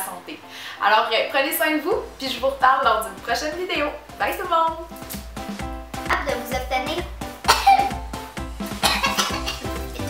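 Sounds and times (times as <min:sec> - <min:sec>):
background music with steady beat: 0:00.0 - 0:10.0
woman coughing: 0:07.5 - 0:07.9, 0:08.8 - 0:09.8.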